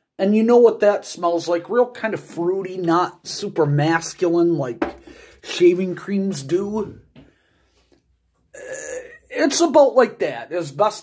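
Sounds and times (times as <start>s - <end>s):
man's held vocal sound: 8.6s - 9.4s.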